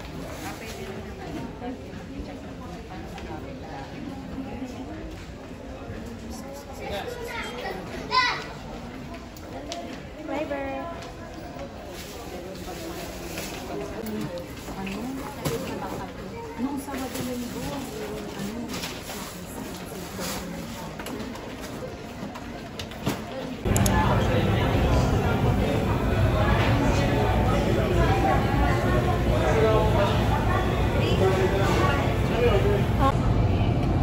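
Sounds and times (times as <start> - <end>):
murmured voices: 0.0 - 34.0
steady low rumble: 23.7 - 34.0.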